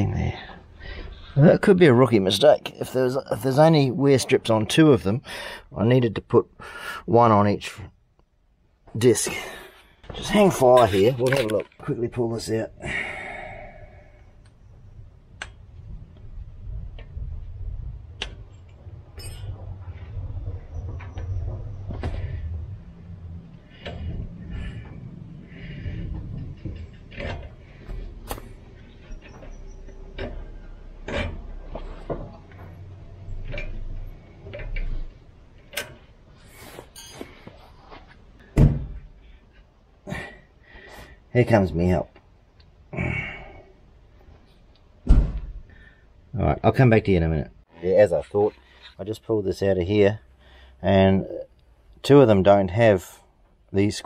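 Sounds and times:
heavy thump: 38.5s - 39.1s, 45.0s - 45.7s.

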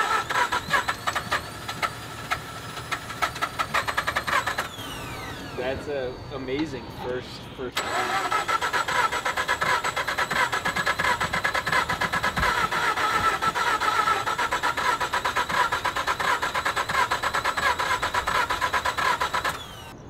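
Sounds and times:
rotary engine cranking by starter: 0.0s - 20.0s.

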